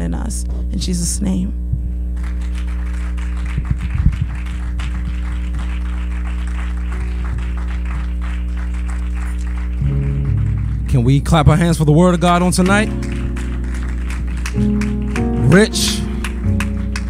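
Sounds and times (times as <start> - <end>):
scattered applause: 2.1 - 17.0
keyboard chords: 3.8 - 17.0.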